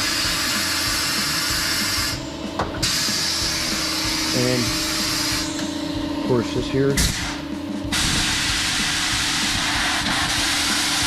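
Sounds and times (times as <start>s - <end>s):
compressed air hissing: 0.0s - 5.8s, 7.0s - 11.0s.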